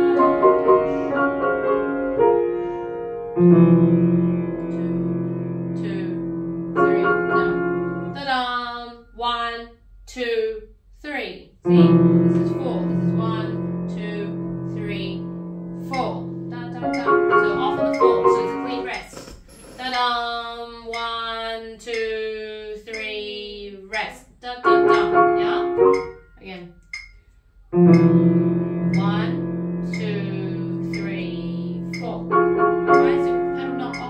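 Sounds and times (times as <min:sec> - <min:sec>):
grand piano playing: 0:00.0 - 0:08.2, 0:11.7 - 0:19.0, 0:24.6 - 0:26.4, 0:27.8 - 0:34.0.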